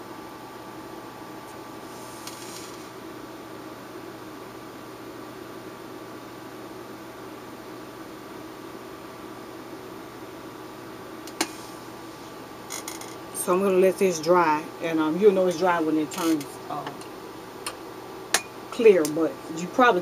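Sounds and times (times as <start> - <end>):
low hum and hiss: 0.0 - 20.0.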